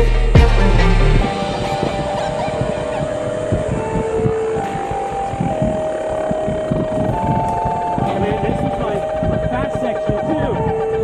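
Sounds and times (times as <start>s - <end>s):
electric motors whining: 0.6s - 11.0s
wind buffeting microphone: 1.2s - 11.0s.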